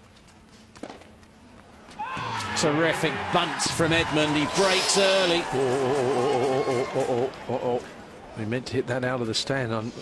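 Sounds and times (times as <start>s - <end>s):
faint footsteps on court: 0.0s - 2.4s.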